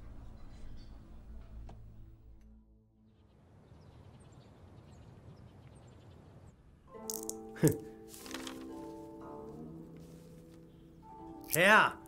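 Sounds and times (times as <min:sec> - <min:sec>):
background music cue: 0:06.9 - 0:12.0.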